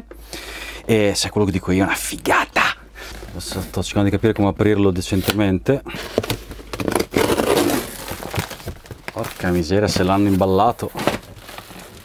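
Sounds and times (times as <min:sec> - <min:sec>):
cardboard box being torn open: 0:06.2 - 0:12.0.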